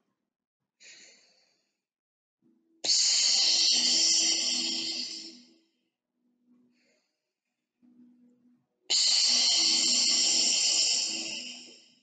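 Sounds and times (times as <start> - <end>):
woman breathing in through nose: 0.8 - 1.7, 8.9 - 12.0.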